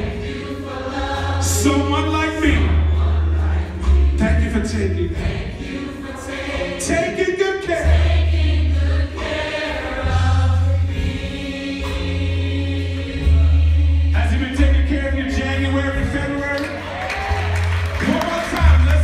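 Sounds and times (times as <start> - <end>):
band accompaniment: 0.0 - 19.0
gospel choir singing: 0.0 - 19.0.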